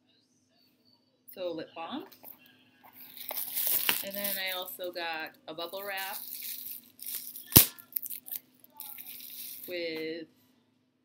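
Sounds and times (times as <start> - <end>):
bubble wrap crackling: 2.9 - 4.9, 5.8 - 9.8
bubble wrap sharp snap: 6.2 - 9.6.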